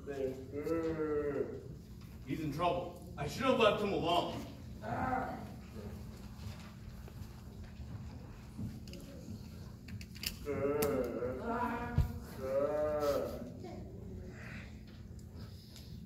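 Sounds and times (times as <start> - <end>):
low room hum: 0.0 - 16.0
wavering animal-like calls: 10.4 - 13.6.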